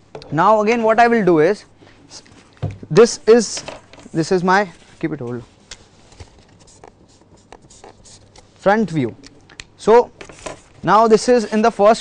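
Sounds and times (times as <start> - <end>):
pen scratching on paper: 6.7 - 8.4.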